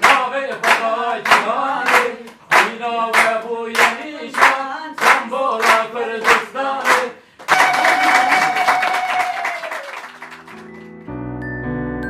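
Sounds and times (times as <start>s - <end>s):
people clapping: 0.0s - 11.0s.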